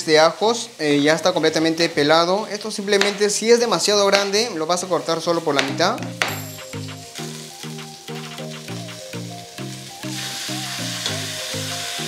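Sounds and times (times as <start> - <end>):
chicken sizzling in oil: 0.0 - 12.0
background music melody: 4.3 - 12.0.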